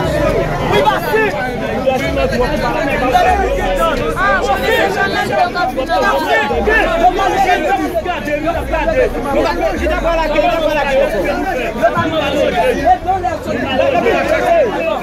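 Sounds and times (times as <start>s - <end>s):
men talking and calling: 0.0s - 15.0s.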